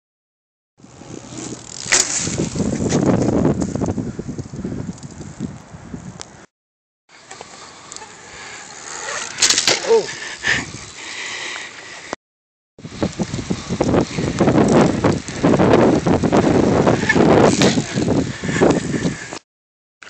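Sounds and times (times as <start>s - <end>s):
bike tyres and frame rattling: 0.8s - 6.3s, 7.2s - 11.0s, 12.8s - 19.4s
outdoor noise: 0.8s - 6.5s, 7.1s - 12.2s, 12.8s - 19.4s.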